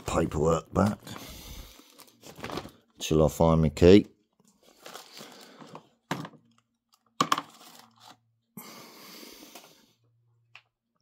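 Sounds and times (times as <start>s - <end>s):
paper rustling: 0.8s - 2.8s, 4.5s - 5.9s, 7.3s - 8.2s
objects knocking when set down: 6.1s - 6.4s.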